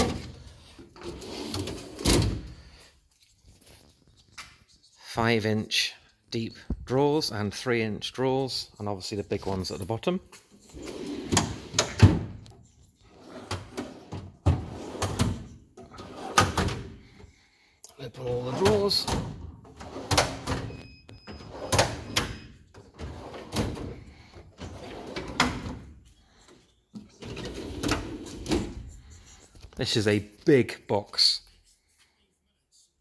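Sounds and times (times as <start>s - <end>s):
steel drawers clicking and clunking: 0.0s - 2.6s, 10.8s - 12.4s, 13.2s - 17.0s, 18.2s - 20.7s, 21.3s - 25.9s, 27.2s - 28.8s.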